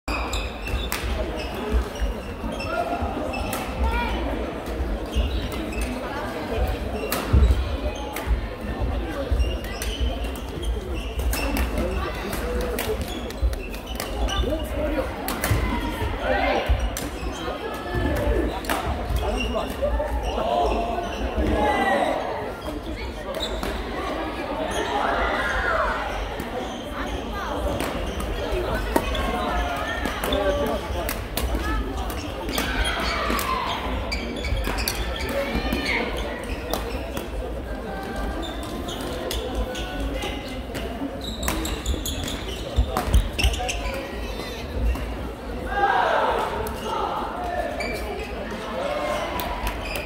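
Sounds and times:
players' voices: 0.1 - 50.0.

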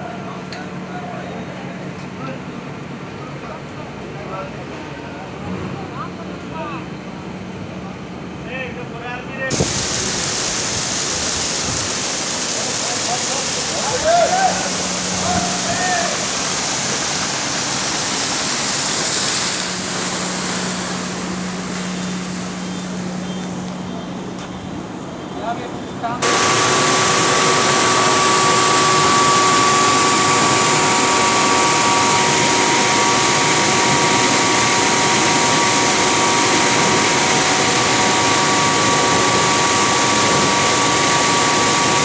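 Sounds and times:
slurry gushing from hose: 9.5 - 23.8, 26.2 - 42.0
steady low hum: 14.4 - 42.0.

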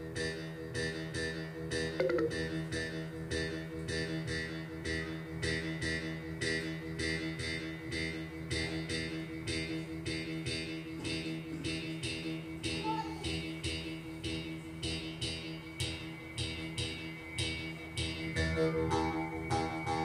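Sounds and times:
drum kit beat: 2.0 - 2.6
sustained chords: 2.0 - 2.9.

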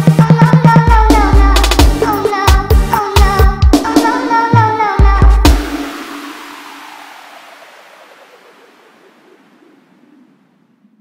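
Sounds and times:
wash of electronic noise: 3.9 - 11.0.

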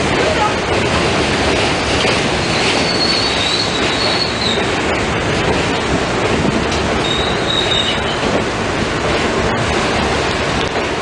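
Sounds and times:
subway train wheels rumbling: 0.0 - 11.0
high-pitched wheel squeal: 2.4 - 4.6, 7.0 - 8.2.

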